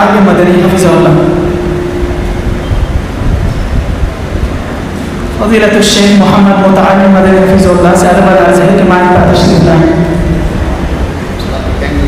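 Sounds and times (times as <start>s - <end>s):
faint steady hum: 0.0s - 12.0s
low room rumble in large hall: 0.0s - 12.0s.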